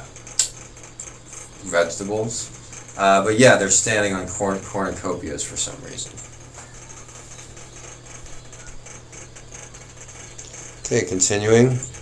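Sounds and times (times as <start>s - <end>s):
steady low hum: 0.0s - 12.0s
faint scattered clicks: 0.2s - 3.1s, 3.7s - 12.0s
man speaking: 1.6s - 6.2s.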